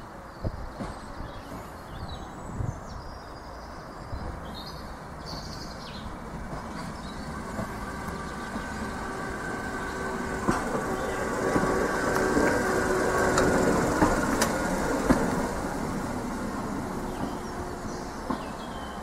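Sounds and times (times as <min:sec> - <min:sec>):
railcar whining hum: 0:00.0 - 0:19.0.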